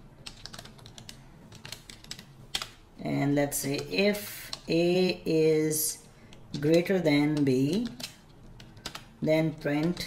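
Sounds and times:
computer keyboard typing: 0:00.2 - 0:02.8, 0:03.5 - 0:05.2, 0:06.3 - 0:10.0.

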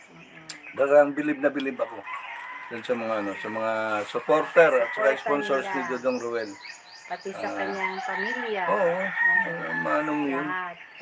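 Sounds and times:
rooster crowing: 0:02.0 - 0:06.7, 0:07.4 - 0:10.5
person speaking: 0:07.3 - 0:07.8.

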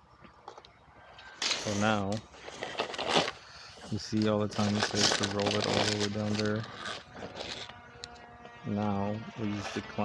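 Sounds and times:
gloved hands rustling and scraping: 0:01.2 - 0:08.0
person speaking: 0:01.6 - 0:02.3, 0:03.8 - 0:06.9, 0:08.7 - 0:10.0.

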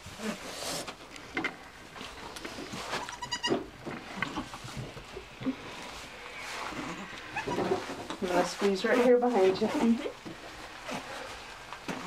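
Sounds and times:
soft goat sounds: 0:01.9 - 0:12.0
goat bleat: 0:02.9 - 0:03.6, 0:06.7 - 0:07.9.

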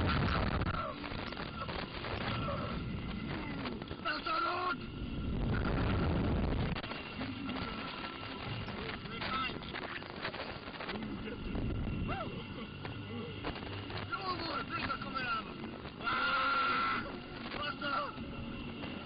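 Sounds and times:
riders yelping and whooping: 0:00.0 - 0:04.9, 0:12.0 - 0:18.3
wind buffeting microphone: 0:04.8 - 0:16.0.

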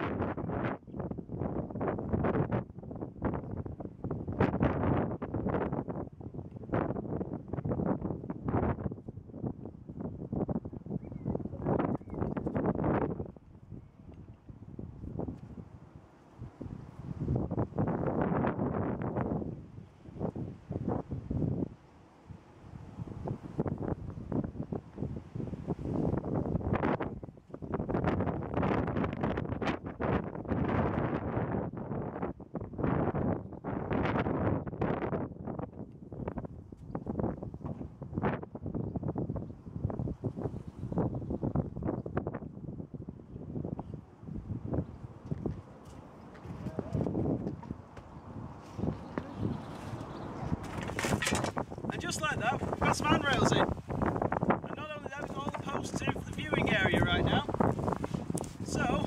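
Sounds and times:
wind buffeting microphone: 0:00.0 - 0:59.0.

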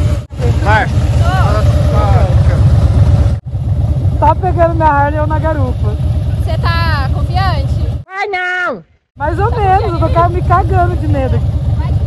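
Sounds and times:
motorcycle engine pulsing: 0:00.0 - 0:08.0, 0:09.2 - 0:12.0.

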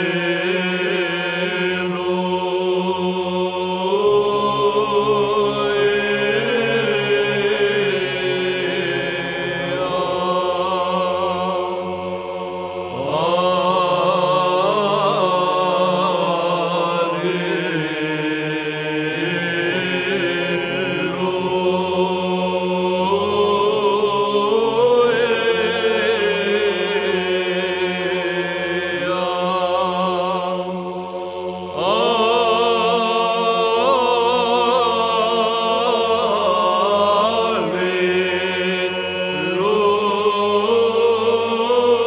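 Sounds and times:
choir singing chant: 0:00.0 - 0:42.0
held vocal drone: 0:00.0 - 0:42.0.

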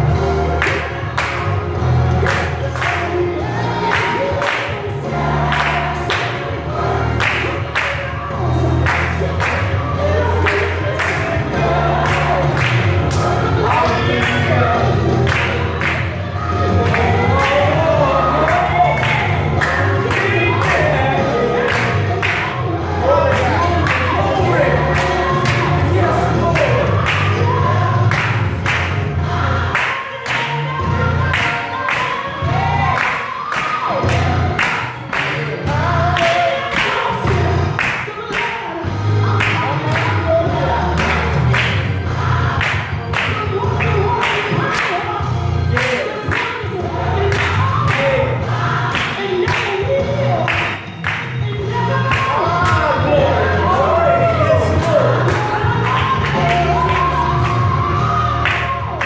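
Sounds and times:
band with strong bass line: 0:00.0 - 0:29.7, 0:38.9 - 0:45.8, 0:46.7 - 0:59.0
gospel choir singing: 0:00.0 - 0:59.0.

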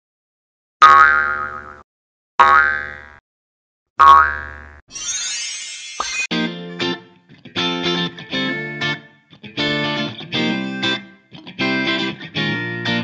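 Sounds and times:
cartoon boing effects: 0:00.8 - 0:01.8, 0:02.4 - 0:03.2, 0:04.0 - 0:04.8
bright shimmering swish: 0:04.9 - 0:06.3.

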